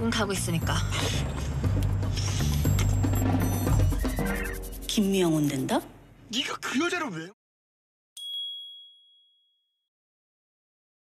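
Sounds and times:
bright high ding: 0:08.2 - 0:09.6.

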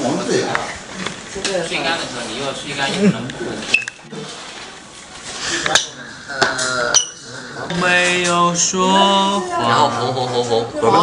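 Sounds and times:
young men talking: 0:00.0 - 0:04.4, 0:05.2 - 0:11.0.

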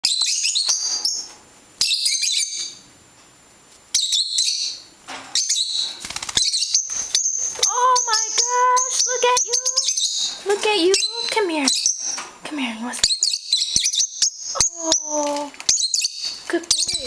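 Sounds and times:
lovebirds chirping: 0:00.0 - 0:02.9, 0:03.9 - 0:17.0
wings flapping: 0:05.9 - 0:07.2.

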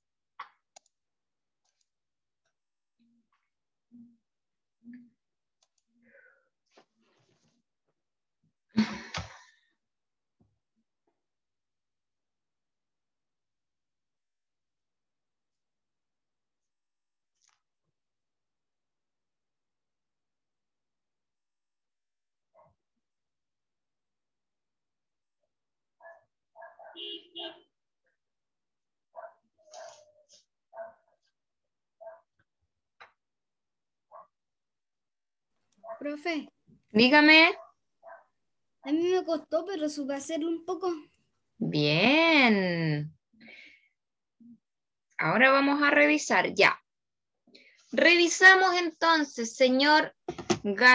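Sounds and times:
dog barking faintly: 0:29.2 - 0:31.3.

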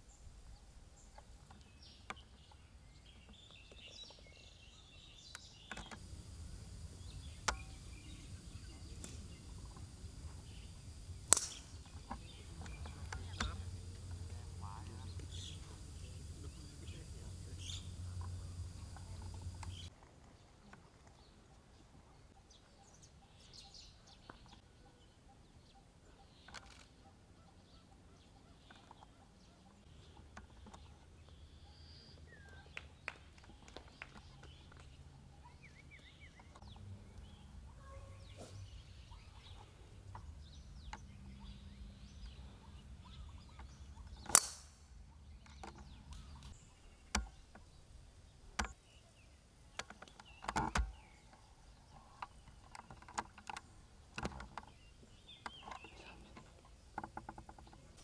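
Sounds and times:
faint bird chirps: 0:00.0 - 0:19.9, 0:20.7 - 0:44.4, 0:54.2 - 0:58.0
golf club striking ball: 0:06.2 - 0:16.3, 0:44.2 - 0:44.9.

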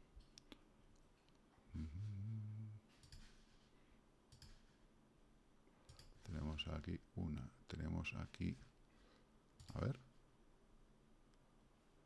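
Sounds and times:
man humming: 0:01.7 - 0:02.9
faint computer mouse clicks: 0:04.3 - 0:04.7.

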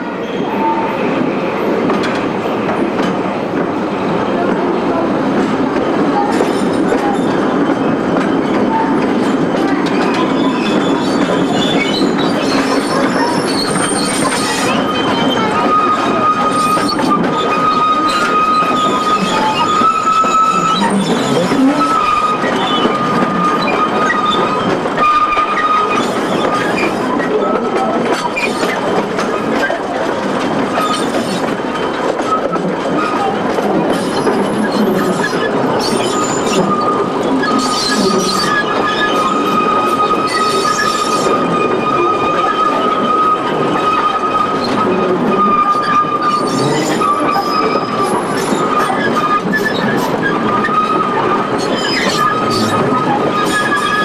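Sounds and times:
train wheels rumbling and clattering: 0:00.0 - 0:54.0
wheel flanges squealing: 0:09.6 - 0:54.0.

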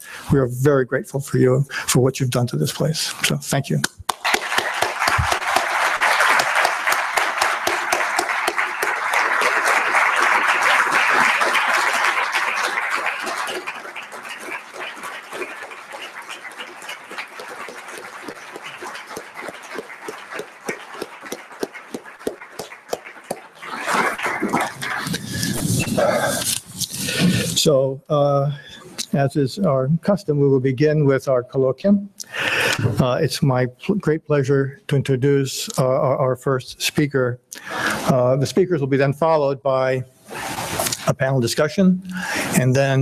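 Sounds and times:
audience applauding: 0:04.0 - 0:27.6.

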